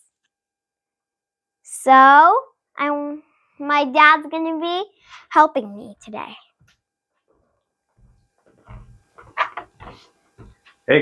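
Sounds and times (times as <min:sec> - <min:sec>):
footsteps on floor: 0:06.6 - 0:10.8
light knocks: 0:08.0 - 0:10.7.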